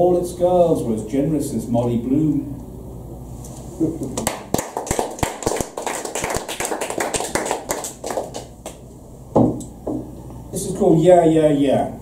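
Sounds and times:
audience applauding: 0:04.2 - 0:08.8.

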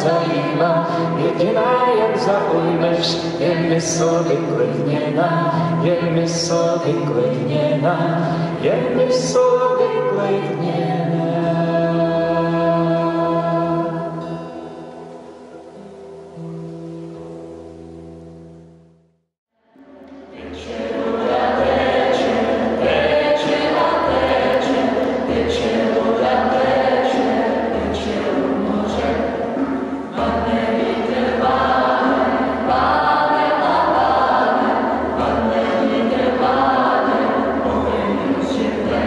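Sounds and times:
vocal group singing: 0:00.0 - 0:14.5, 0:19.8 - 0:39.0.

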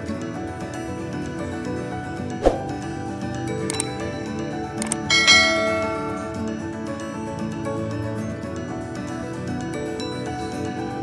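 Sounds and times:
soft background music: 0:00.0 - 0:11.0
bell-like notification ding: 0:05.1 - 0:06.6.

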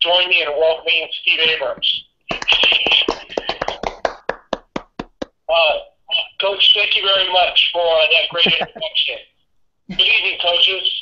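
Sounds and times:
people clapping: 0:02.3 - 0:05.3, 0:08.4 - 0:08.8.

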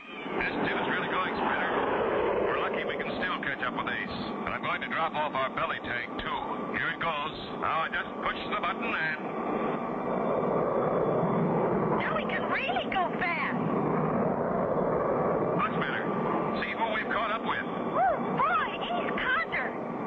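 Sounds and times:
rushing jet engine: 0:00.0 - 0:20.0.

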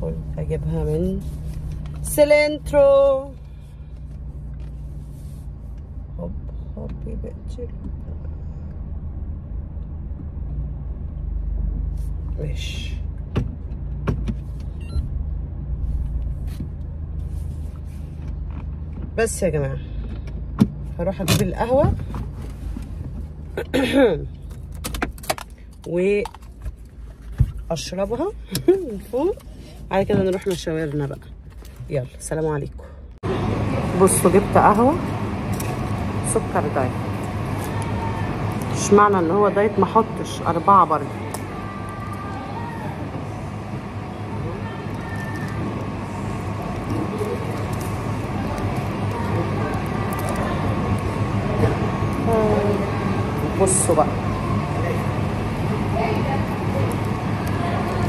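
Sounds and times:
low steady hum: 0:00.0 - 0:58.0
indistinct voices: 0:33.2 - 0:58.0.

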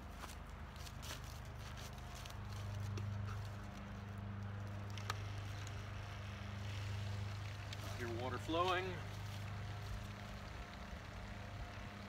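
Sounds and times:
water pump humming and pulsing: 0:00.0 - 0:12.0.

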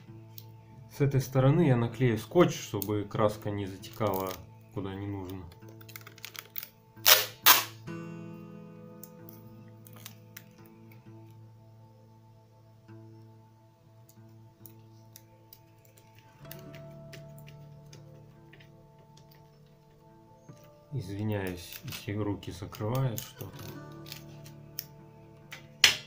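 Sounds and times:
background music: 0:00.0 - 0:26.0
packing tape ripping: 0:03.8 - 0:04.4, 0:05.3 - 0:07.8, 0:09.8 - 0:10.7, 0:21.4 - 0:22.2, 0:22.8 - 0:25.0
tape and paper rustling: 0:03.8 - 0:04.4, 0:05.2 - 0:07.7, 0:09.2 - 0:11.0, 0:14.6 - 0:25.0.

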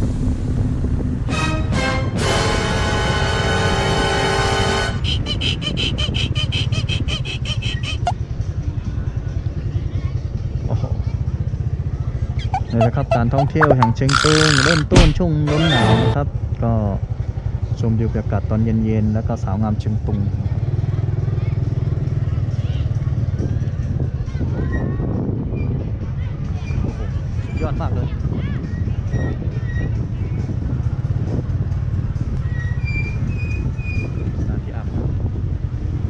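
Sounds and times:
wind rumble on microphone: 0:04.9 - 0:11.0, 0:21.5 - 0:36.0
rapid high pulsing: 0:12.4 - 0:15.0
motorcycle engine running: 0:20.2 - 0:24.3.

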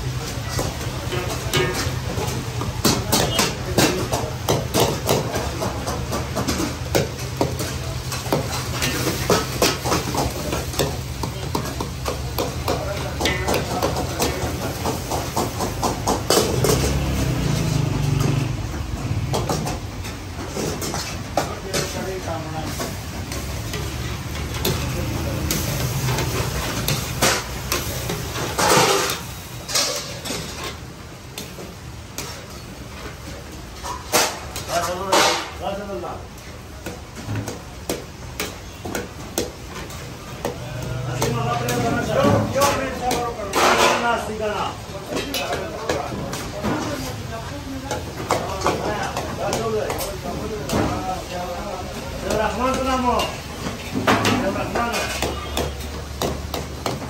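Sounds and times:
low burner rumble: 0:00.0 - 0:57.0
meat sizzling: 0:22.7 - 0:30.7.

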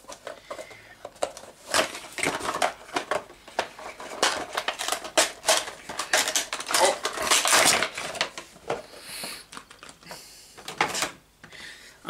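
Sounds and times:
packaging crackling and clattering: 0:00.0 - 0:08.9, 0:09.5 - 0:11.2.

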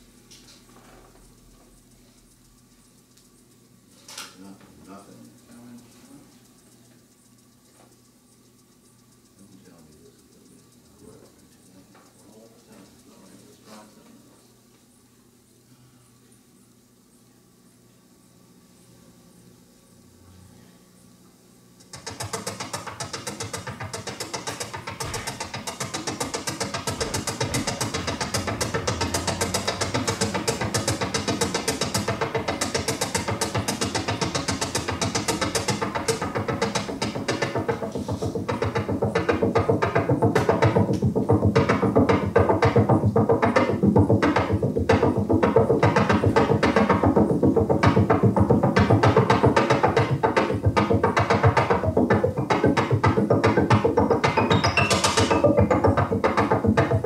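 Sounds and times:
clicky percussive synth pulses: 0:04.8 - 0:13.6, 0:21.9 - 0:57.0.

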